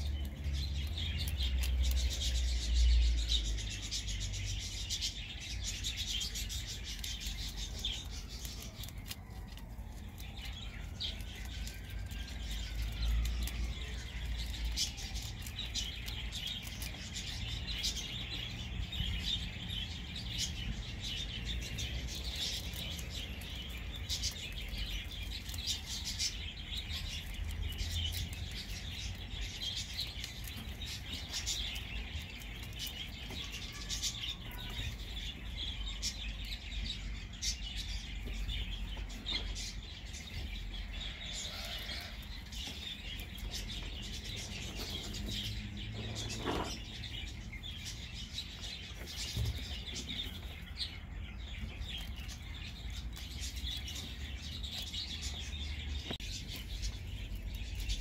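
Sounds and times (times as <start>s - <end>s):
rabbit chewing a leaf: 0.0s - 58.0s
small birds chirping: 0.0s - 58.0s.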